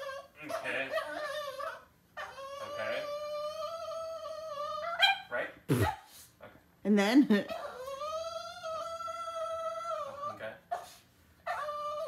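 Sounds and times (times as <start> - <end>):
dog whining: 0.0 - 6.2, 7.4 - 12.0.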